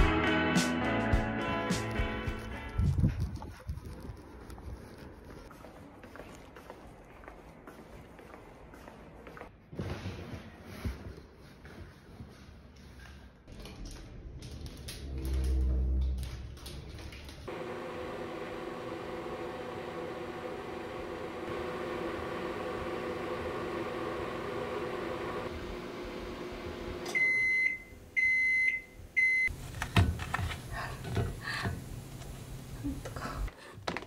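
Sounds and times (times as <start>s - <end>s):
microwave oven humming: 17.5s - 33.3s.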